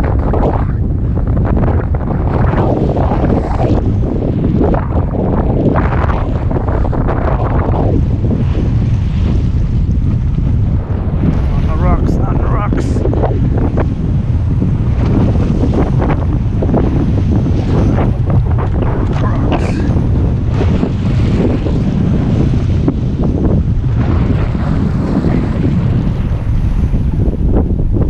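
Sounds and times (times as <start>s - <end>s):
waves breaking against rocks: 0.0s - 28.0s
wind buffeting microphone: 0.0s - 28.0s.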